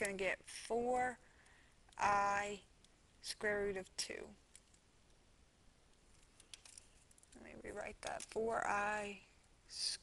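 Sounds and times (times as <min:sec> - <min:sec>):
person speaking: 0:00.0 - 0:01.2, 0:01.8 - 0:04.5, 0:06.6 - 0:10.0.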